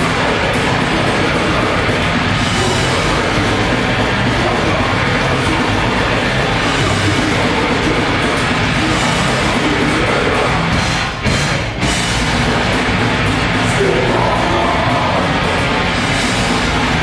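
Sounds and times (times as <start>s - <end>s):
person singing metal vocals: 0.0s - 10.9s, 12.5s - 17.0s
bass guitar: 0.0s - 17.0s
distorted electric guitars: 0.0s - 17.0s
drums: 0.0s - 17.0s.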